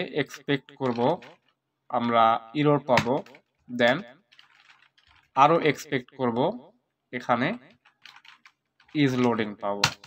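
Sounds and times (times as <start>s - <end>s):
person speaking: 0.0s - 4.2s, 4.8s - 7.9s, 8.8s - 10.0s
computer keyboard typing: 3.0s - 5.4s, 7.7s - 10.0s.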